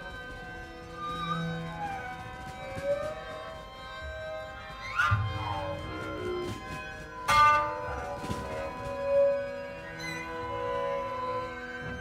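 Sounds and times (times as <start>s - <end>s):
strings gliding in pitch: 0.0s - 12.0s.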